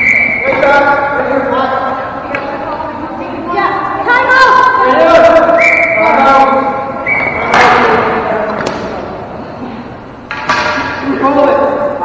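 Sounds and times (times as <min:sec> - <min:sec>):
sharp stick and ball impacts: 0:00.0 - 0:01.0, 0:07.3 - 0:09.0, 0:10.3 - 0:11.1
players calling out: 0:00.0 - 0:03.0, 0:03.8 - 0:09.1.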